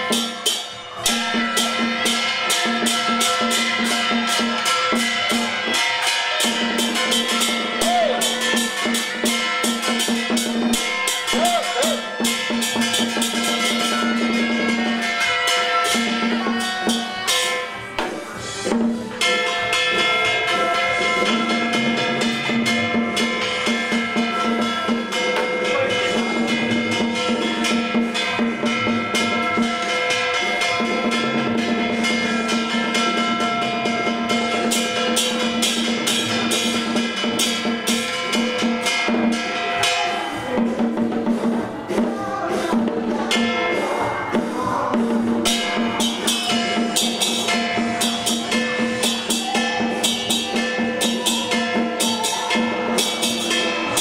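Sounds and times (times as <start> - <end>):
percussion: 0.0 - 54.0
small drum beaten quickly: 0.0 - 54.0.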